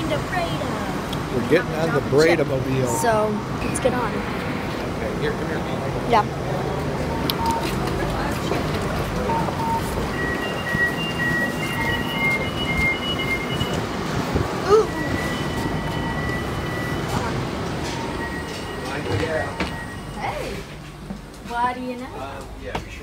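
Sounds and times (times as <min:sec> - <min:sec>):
train rumble: 0:00.0 - 0:23.0
high whine: 0:01.1 - 0:21.8.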